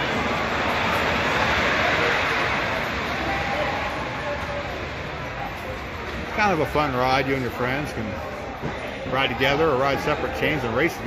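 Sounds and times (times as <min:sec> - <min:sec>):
roller coaster train rushing roar: 0:00.0 - 0:08.4.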